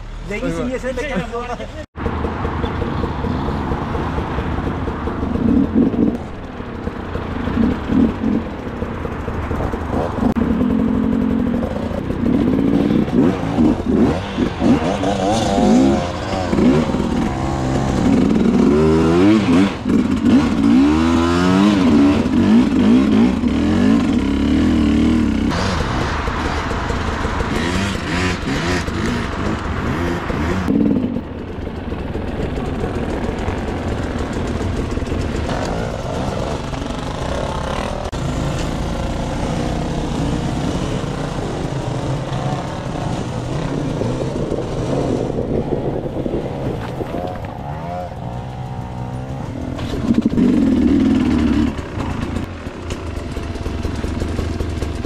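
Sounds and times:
dirt bike engine revving: 0:07.1 - 0:08.6, 0:09.6 - 0:31.3, 0:32.5 - 0:55.0.

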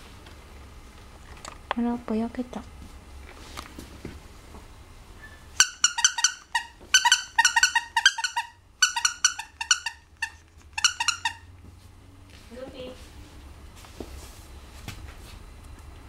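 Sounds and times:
dog toy squeaking: 0:05.6 - 0:11.5.

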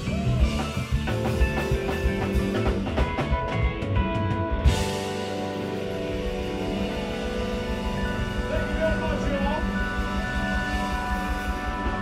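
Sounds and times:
funk band sustained chord: 0:00.0 - 0:12.0.

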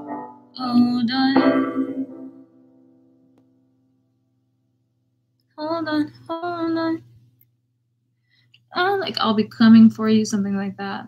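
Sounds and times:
person singing: 0:00.0 - 0:02.4
instrument chord ringing: 0:00.0 - 0:03.2.

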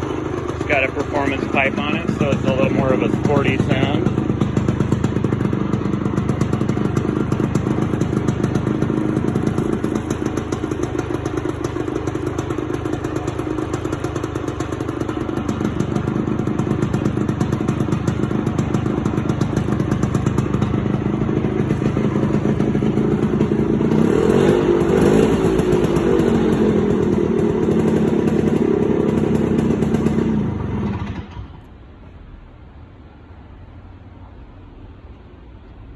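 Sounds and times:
scooter engine idling: 0:00.0 - 0:35.6.

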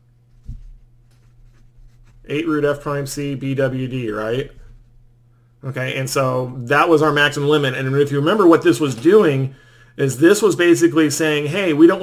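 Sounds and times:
pen scratching on paper: 0:00.6 - 0:02.5.

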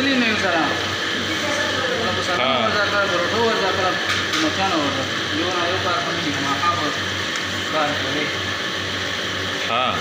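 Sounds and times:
food deep-frying in oil: 0:00.0 - 0:10.0
low burner hum: 0:00.0 - 0:10.0.

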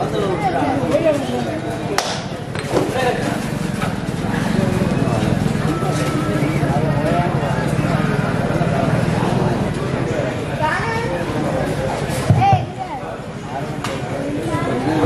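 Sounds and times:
people calling out and talking: 0:00.0 - 0:15.0
sharp claps or knocks: 0:02.0 - 0:02.6.

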